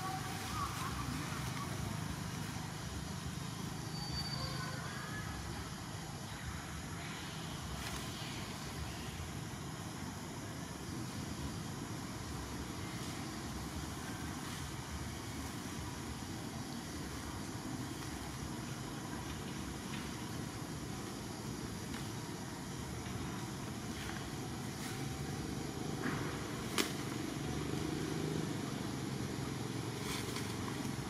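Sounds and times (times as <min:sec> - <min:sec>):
even hiss: 0:00.0 - 0:31.0.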